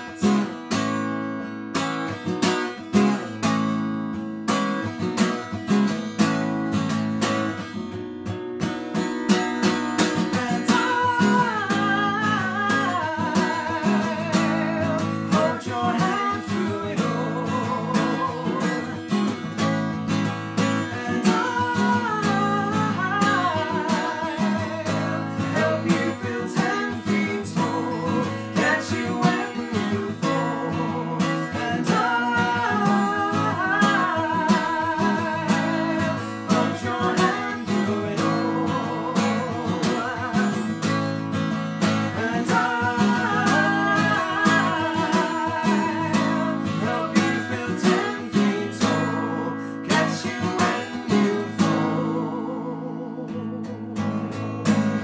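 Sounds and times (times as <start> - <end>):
man singing: 0.0 - 1.0, 2.6 - 3.6, 9.6 - 55.0
strummed acoustic guitar: 0.0 - 55.0.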